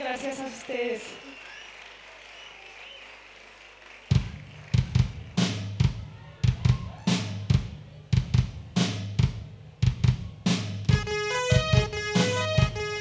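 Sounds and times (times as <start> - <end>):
stage room hum: 0.0 - 13.0
kick and snare drum beat: 4.1 - 13.0.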